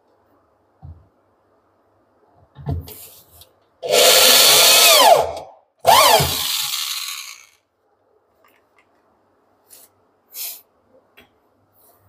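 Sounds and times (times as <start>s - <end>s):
cordless drill driving screws: 3.8s - 7.6s.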